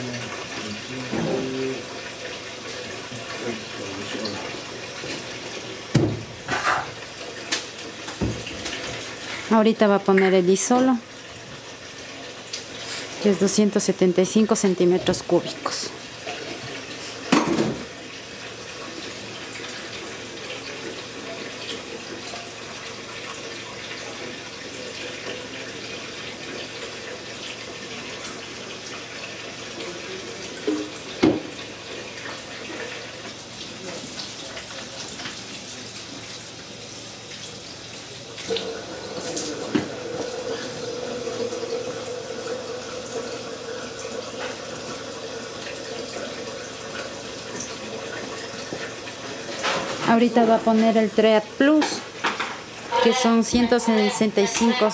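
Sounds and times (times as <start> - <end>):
water running from tap: 0.0 - 54.9
knock: 5.9 - 6.3, 31.2 - 31.5.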